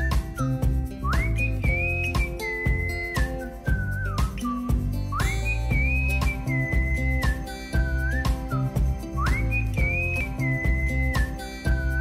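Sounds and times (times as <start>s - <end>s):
bass line: 0.0s - 12.0s
whistled melody over a beat: 0.0s - 12.0s.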